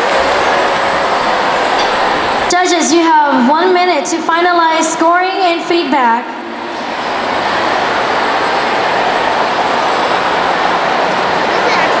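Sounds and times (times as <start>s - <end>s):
crowd applauding: 6.6s - 12.0s.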